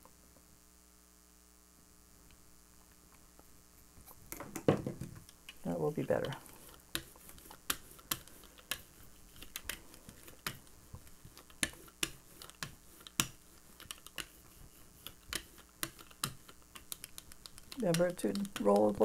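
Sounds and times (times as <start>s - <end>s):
brayer rolling through paint: 5.5s - 19.0s.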